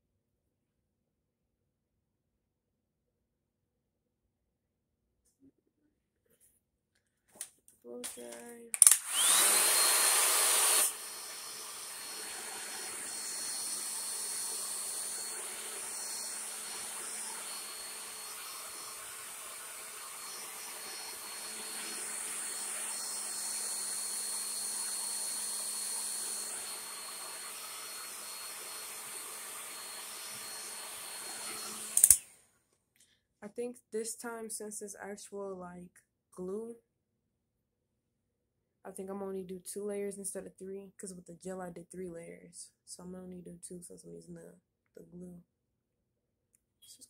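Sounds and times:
hair dryer motor whine: 8.8 - 32.3.

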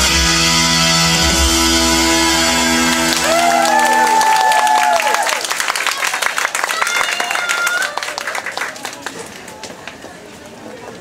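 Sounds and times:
audience clapping and cheering: 2.4 - 10.2.

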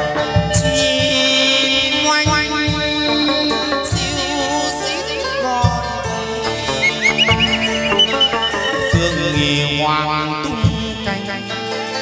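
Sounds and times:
bamboo flute ornamented notes: 6.6 - 9.6.

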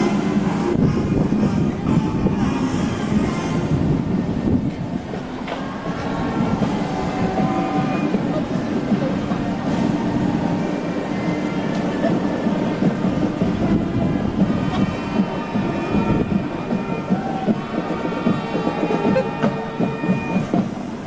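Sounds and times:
indistinct crowd voices: 0.0 - 21.0
low street rumble: 0.0 - 21.0.

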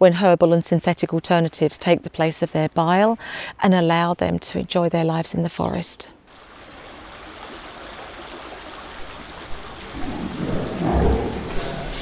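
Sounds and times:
steady forest hiss: 0.0 - 12.0
high insect trill: 0.2 - 12.0
low rough sounds: 9.6 - 12.0.

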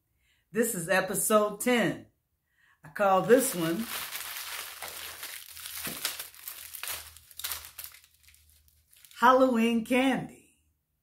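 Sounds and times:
candy wrappers crinkling: 3.1 - 9.3.

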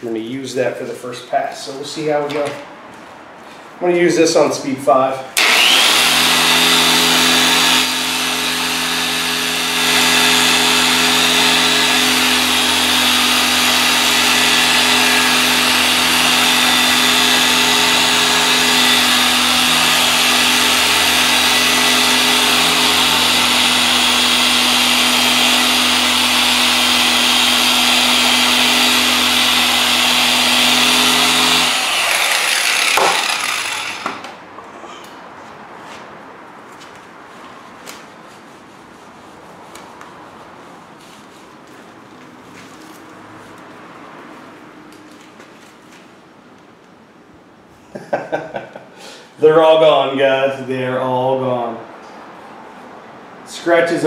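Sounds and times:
car polisher running: 5.4 - 34.3.

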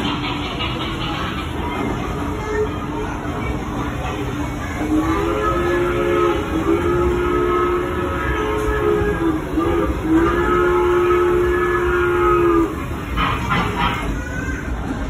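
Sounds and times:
steam train whistle blasts: 4.9 - 12.8.

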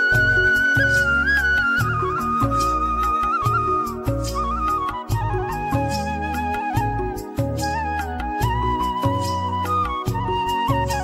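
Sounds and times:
bass and percussion beat: 0.0 - 11.0
flute-like melody: 0.0 - 11.0.

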